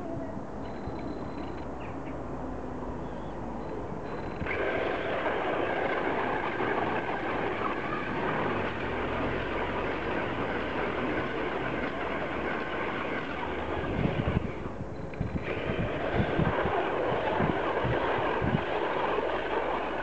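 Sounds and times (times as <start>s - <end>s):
wheels sliding through sand: 4.4s - 14.8s.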